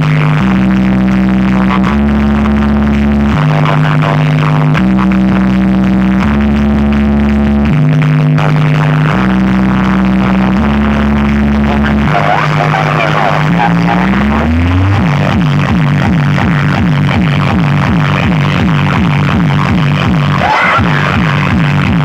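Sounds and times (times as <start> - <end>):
loud dance music with heavy bass: 0.0 - 22.0.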